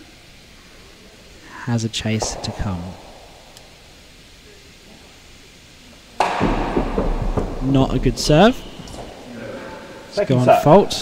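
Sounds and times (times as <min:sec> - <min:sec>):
tennis ball struck with loud crack: 0:02.2 - 0:03.8, 0:06.2 - 0:07.6
ball rumbling along wooden roof: 0:02.2 - 0:04.1, 0:06.2 - 0:08.7.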